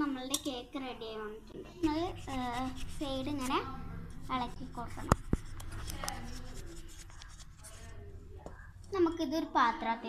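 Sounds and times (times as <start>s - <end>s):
spatula scraping steel bowl: 1.8s - 8.0s.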